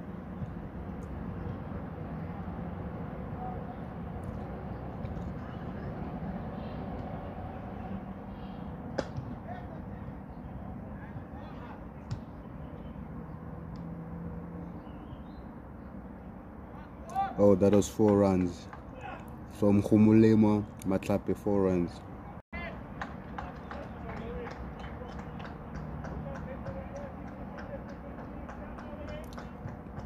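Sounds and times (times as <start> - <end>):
open-air ambience: 0.0 - 30.0.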